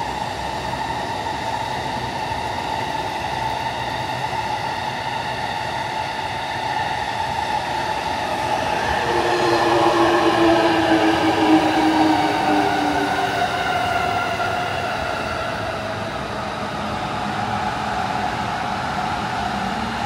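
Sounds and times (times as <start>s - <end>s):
train running noise: 0.0s - 20.0s
electric train motors whining: 6.6s - 18.6s.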